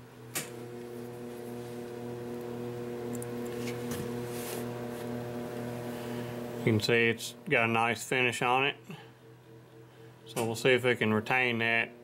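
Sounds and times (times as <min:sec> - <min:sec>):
electrical hum: 0:00.0 - 0:12.0
click: 0:03.1 - 0:03.3.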